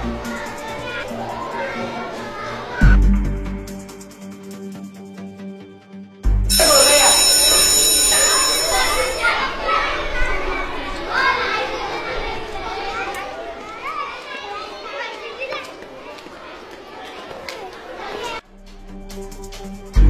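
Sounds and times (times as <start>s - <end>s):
children chattering and calling: 0.0s - 3.0s, 6.5s - 18.5s.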